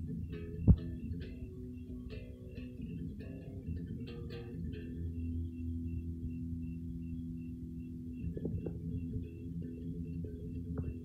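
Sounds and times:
electric guitar chord ringing: 0:00.0 - 0:11.0
electric guitar notes picked: 0:00.0 - 0:11.0.

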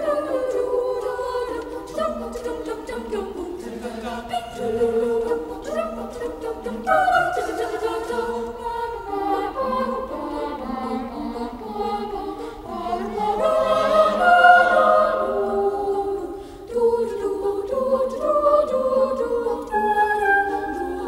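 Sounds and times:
boys' choir singing: 0:00.0 - 0:21.0.

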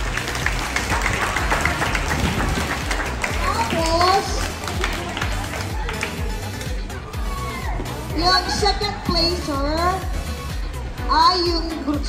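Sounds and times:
crowd applauding: 0:00.0 - 0:07.0.

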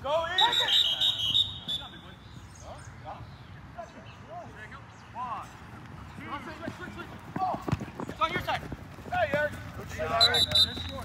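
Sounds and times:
players shouting: 0:00.0 - 0:02.2, 0:06.2 - 0:11.0.

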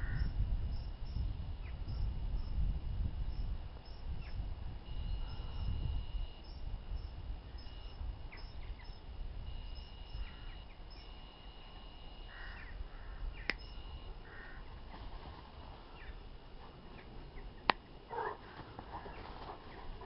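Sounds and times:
wind rumble on microphone: 0:00.0 - 0:20.0
harsh bird calls: 0:09.6 - 0:14.8.

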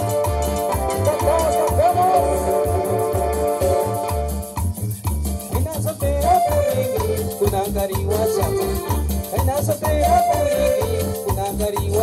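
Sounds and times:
hand percussion: 0:00.0 - 0:12.0
live band playing latin dance music: 0:00.0 - 0:12.0
low bass beat: 0:00.0 - 0:12.0.

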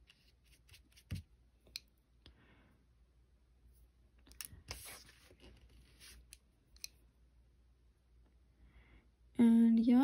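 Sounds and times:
nail brush rustling: 0:04.4 - 0:06.9.

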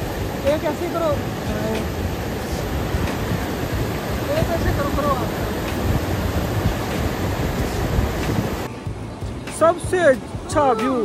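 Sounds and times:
river rushing over boulders: 0:00.0 - 0:11.0.

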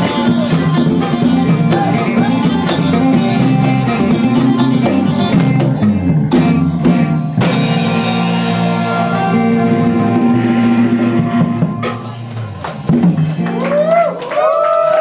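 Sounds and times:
live band with guitar and drums: 0:00.0 - 0:15.0.

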